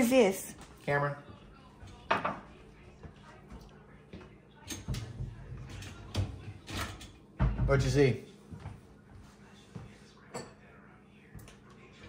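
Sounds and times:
dishes clinking: 0:01.9 - 0:02.6, 0:04.6 - 0:07.9, 0:10.2 - 0:10.8.

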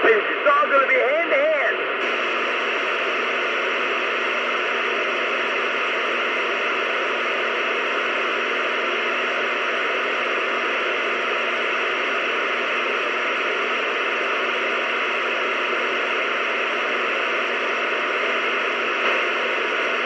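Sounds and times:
radio static hiss: 0:00.0 - 0:20.0.

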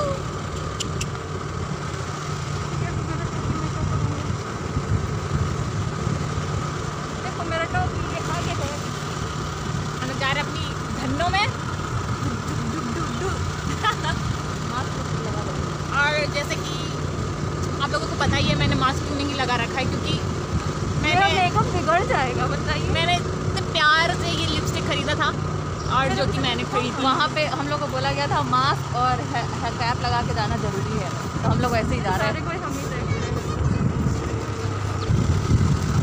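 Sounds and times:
motor scooter engine running: 0:00.0 - 0:36.0
road and wind noise: 0:00.0 - 0:36.0
voices: 0:00.0 - 0:36.0.

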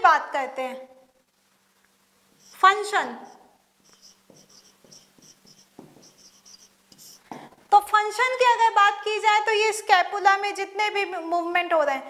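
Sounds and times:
marker squeaking on whiteboard: 0:02.4 - 0:07.3.

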